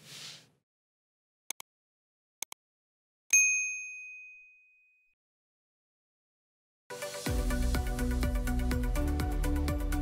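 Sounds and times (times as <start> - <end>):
notification bell ding: 3.4 - 5.1.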